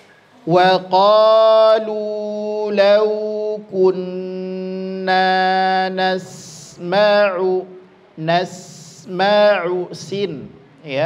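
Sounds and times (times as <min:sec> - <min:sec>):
man chanting recitation: 0:00.4 - 0:11.0.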